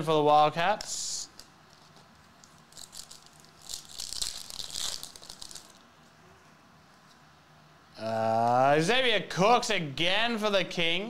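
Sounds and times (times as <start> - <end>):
foil wrapper crinkling and tearing: 1.3 - 5.8.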